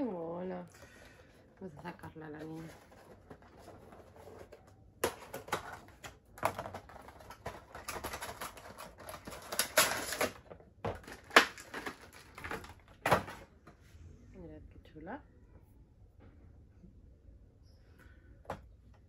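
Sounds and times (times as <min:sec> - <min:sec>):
cardboard and plastic rustling: 0:00.8 - 0:13.8.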